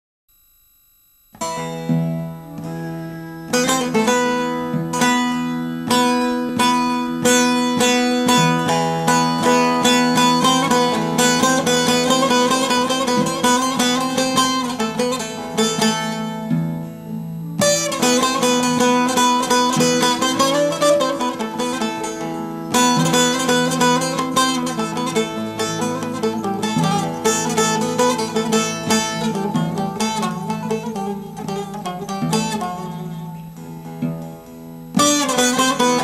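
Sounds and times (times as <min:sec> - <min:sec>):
plucked strings running melody: 0:01.4 - 0:36.0.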